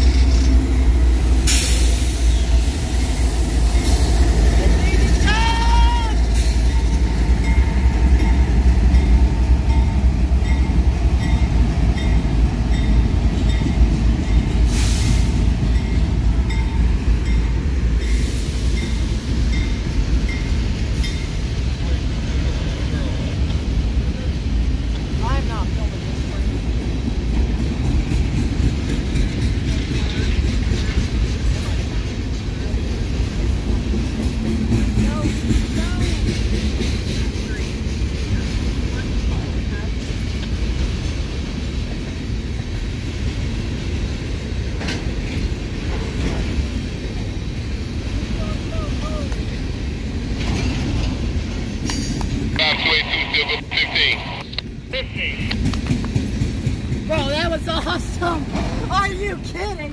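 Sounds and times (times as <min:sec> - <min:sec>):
freight train rumbling past: 0:00.0 - 0:59.9.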